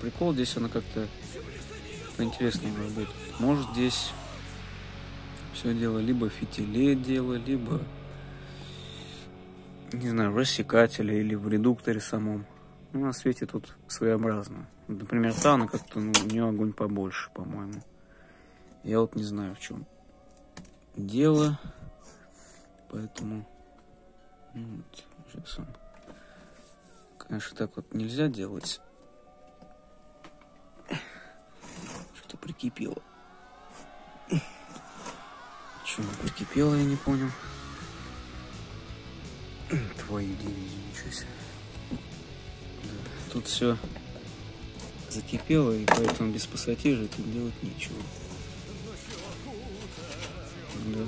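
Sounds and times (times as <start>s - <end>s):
metal lantern handling noises: 15.2s - 16.4s.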